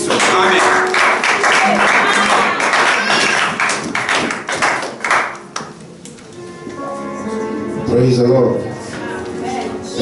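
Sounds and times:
congregation clapping in time: 0:00.0 - 0:05.8.

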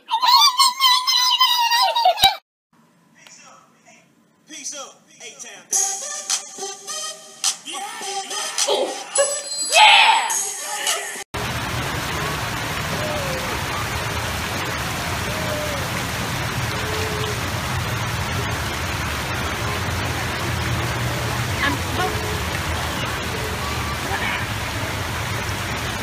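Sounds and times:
water spilling over concrete steps: 0:11.4 - 0:26.0
faint voices: 0:12.0 - 0:17.7, 0:19.2 - 0:25.4.

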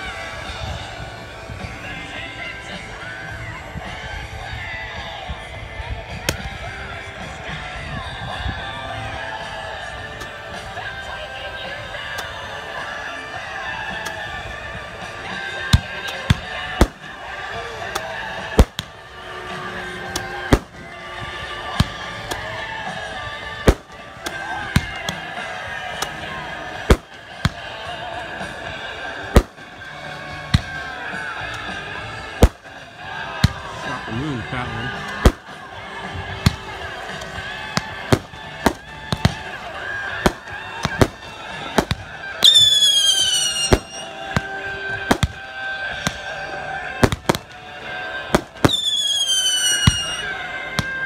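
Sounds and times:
crowd of voices: 0:00.0 - 0:51.0
music: 0:00.0 - 0:51.0.

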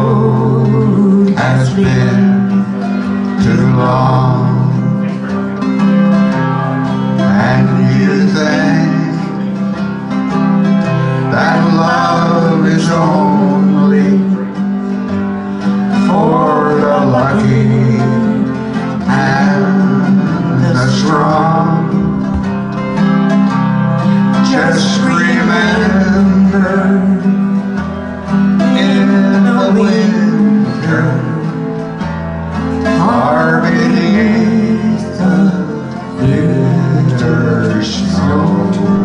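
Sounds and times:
acoustic guitar chords: 0:00.0 - 0:39.0
wordless vocal melody: 0:00.0 - 0:39.0.

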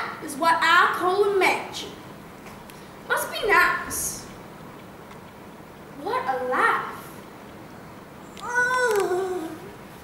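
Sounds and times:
child whining: 0:08.4 - 0:09.7.

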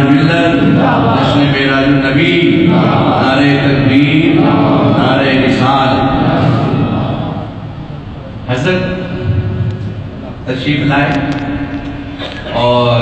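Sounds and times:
man chanting: 0:00.0 - 0:07.6, 0:12.4 - 0:13.0.

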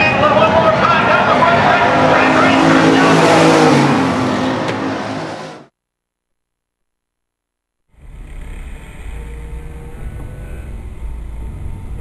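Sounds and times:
stock car engines racing past: 0:00.0 - 0:05.7.

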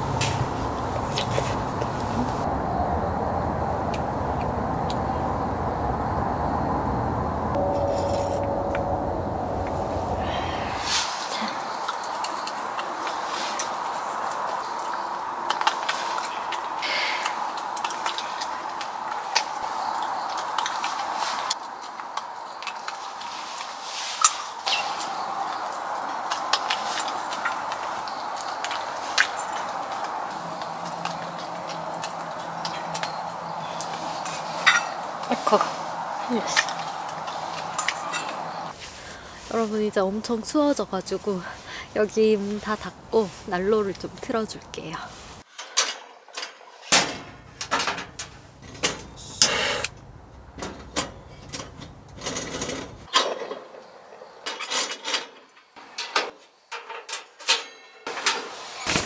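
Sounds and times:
low rumble: 0:00.0 - 0:11.0
steady background hum: 0:00.0 - 0:21.2, 0:24.6 - 0:45.4
dishes and utensils clinking: 0:34.2 - 0:35.6.

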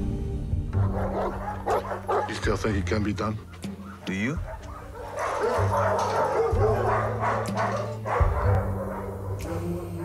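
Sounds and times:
low sustained music: 0:00.0 - 0:10.0
dogs barking: 0:00.8 - 0:10.0.

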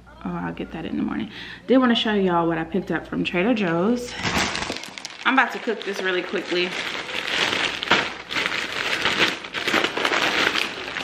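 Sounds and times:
plastic bag rustling: 0:04.1 - 0:11.0.

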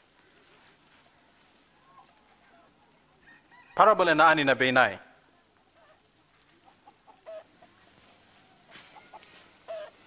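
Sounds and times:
chickens clucking: 0:05.7 - 0:10.0.

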